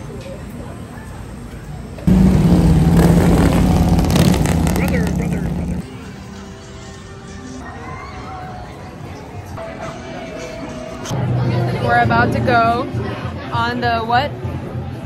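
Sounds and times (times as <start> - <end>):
motorcycle engine passing: 2.1 - 5.8.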